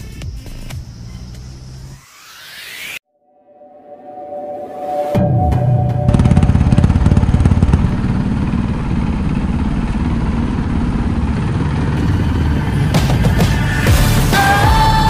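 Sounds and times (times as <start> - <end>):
background music: 3.2 - 7.3, 12.6 - 15.0
motorcycle engine pulsing: 5.2 - 15.0.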